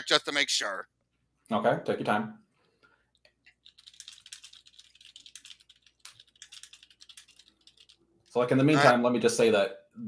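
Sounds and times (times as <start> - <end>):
keyboard typing: 3.2 - 8.3.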